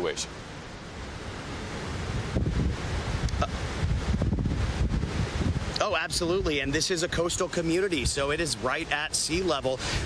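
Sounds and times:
gusty wind buffeting microphone: 0.4s - 10.0s
man's voice: 5.8s - 10.0s.

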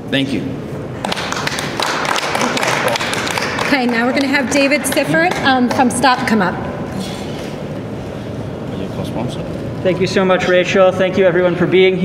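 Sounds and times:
people applauding: 1.0s - 6.3s.

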